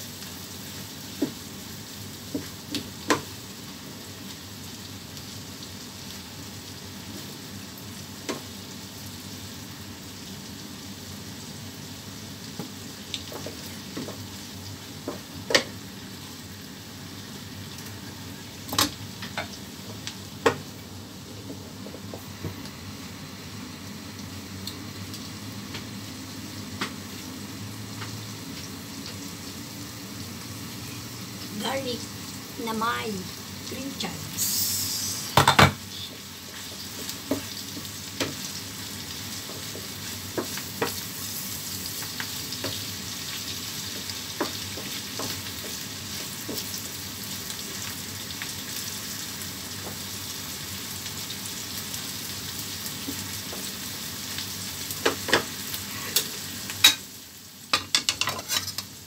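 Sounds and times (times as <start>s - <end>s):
food sizzling in a frying pan: 0.0s - 59.0s.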